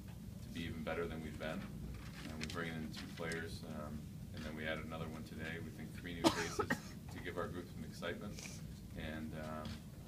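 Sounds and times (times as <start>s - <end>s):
man coughing: 6.2s - 7.0s.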